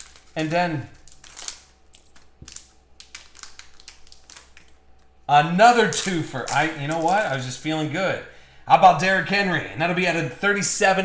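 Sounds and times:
plastic wrapper crinkling: 0.0s - 7.7s.

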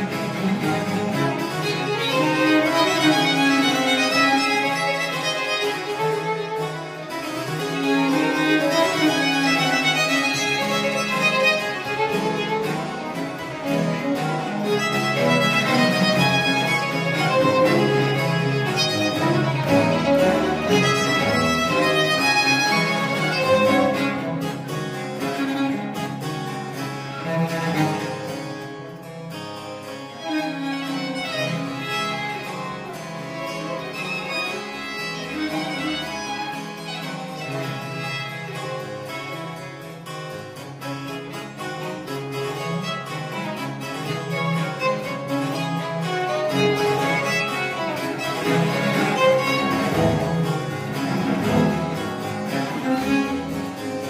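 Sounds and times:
baroque trio playing: 0.0s - 54.0s
violin melody: 0.0s - 54.0s.

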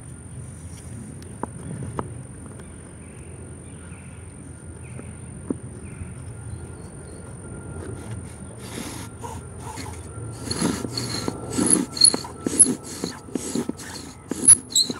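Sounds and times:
bow drill spindle rasping: 7.9s - 14.9s.

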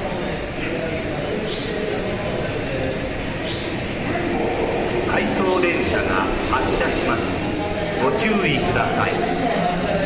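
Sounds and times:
electric train rumbling: 0.0s - 10.0s
voices: 0.0s - 10.0s.

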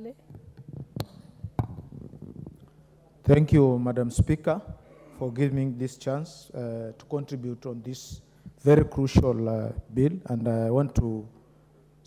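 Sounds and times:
microphone handling thumps: 0.3s - 2.7s, 3.5s - 4.9s, 8.1s - 10.0s.

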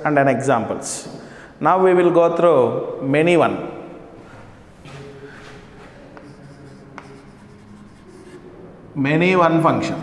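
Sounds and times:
chalk scratching on chalkboard: 4.9s - 8.5s
chalk tapping on board: 5.8s - 8.4s.

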